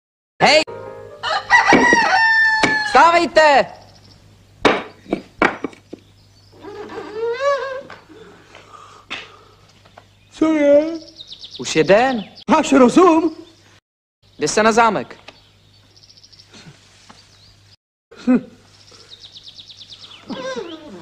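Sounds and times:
rooster crowing: 1.2 - 3.1
sharp knocks: 1.7 - 2.9, 4.6 - 6.0.

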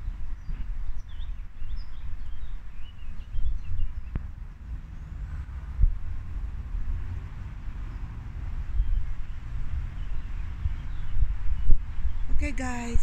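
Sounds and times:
bird chirps: 0.0 - 4.2
low outdoor rumble: 0.0 - 13.0.

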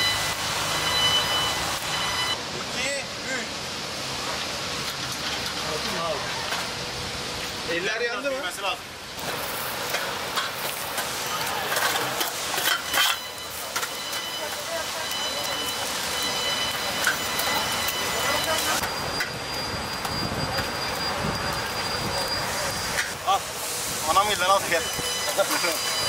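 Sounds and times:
charcoal fire crackling: 0.0 - 26.0
meat sizzling on grill: 0.0 - 26.0.

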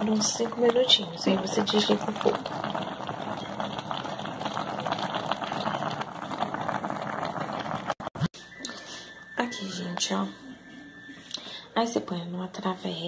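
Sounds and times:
stew bubbling and crackling: 0.0 - 8.3.

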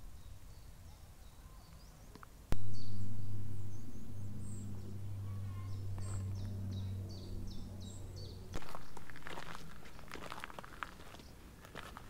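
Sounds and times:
low steady hum: 2.4 - 12.0
bird singing high notes: 2.6 - 8.4
footsteps on gravel: 5.9 - 6.6, 8.5 - 12.0.

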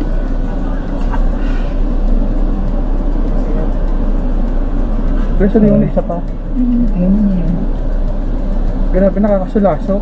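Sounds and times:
car engine hum inside cabin: 0.0 - 10.0.

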